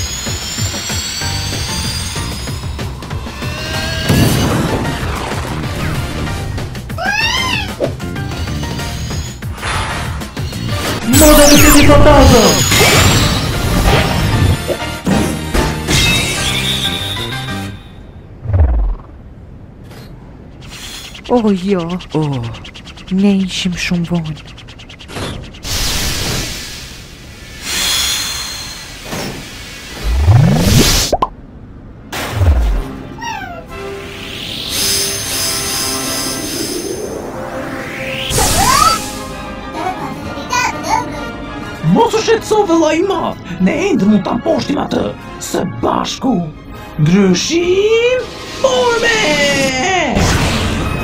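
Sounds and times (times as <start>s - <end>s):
background music: 0.3s - 18.7s, 32.3s - 50.0s
high cartoon cry: 7.0s - 7.8s
falling swoop: 18.4s - 19.2s, 29.9s - 31.3s
whooshing sound effects: 18.4s - 19.2s, 29.9s - 31.3s
rising swoop: 18.4s - 19.3s, 29.9s - 31.3s, 34.1s - 39.2s
descending tones: 18.4s - 19.4s, 30.0s - 31.3s, 33.8s - 39.4s
cartoon action music: 32.4s - 41.3s.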